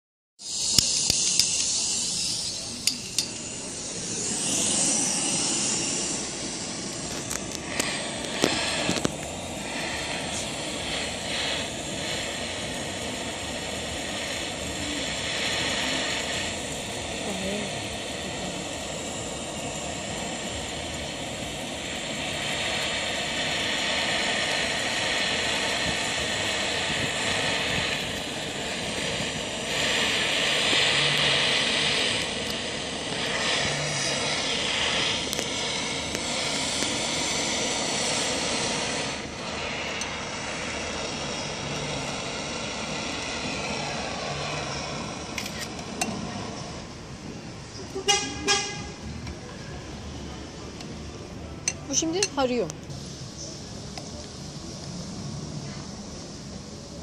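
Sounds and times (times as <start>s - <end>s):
butane torch flame hissing: 0.4s - 57.0s.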